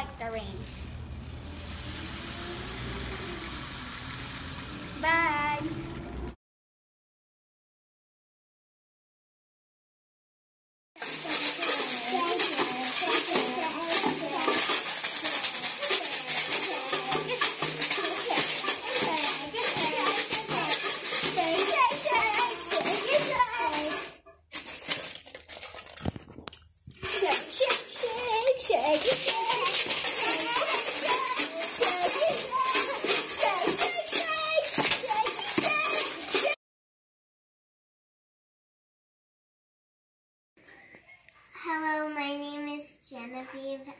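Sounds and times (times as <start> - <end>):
tube shakers rattling: 0.0 - 6.3, 11.0 - 36.6
faint children's voices: 1.6 - 3.7, 5.0 - 5.7, 11.0 - 24.2, 27.0 - 36.6.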